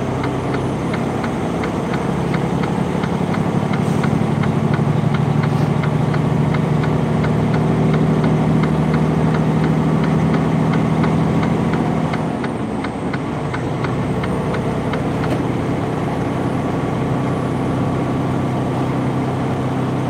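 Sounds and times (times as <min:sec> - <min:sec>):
truck diesel engine drone: 0:00.0 - 0:20.0.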